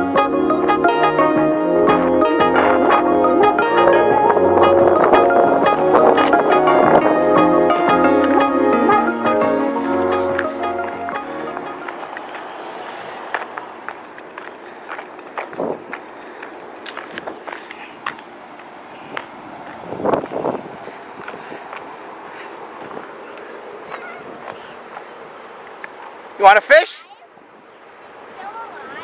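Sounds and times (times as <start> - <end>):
background music: 0.0 - 12.2
outdoor noise: 0.0 - 29.0
footsteps on gravel: 10.3 - 25.2.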